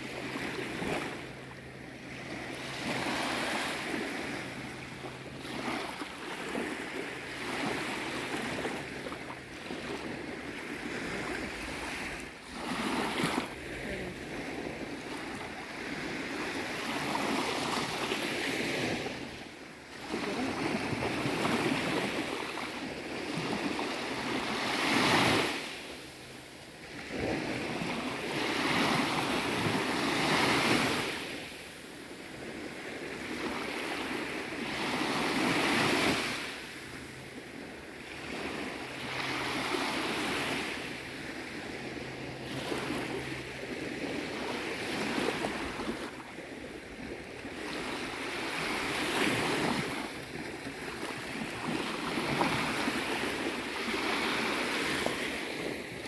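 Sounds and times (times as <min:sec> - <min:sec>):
gentle waves washing on shore: 0:00.0 - 0:56.0.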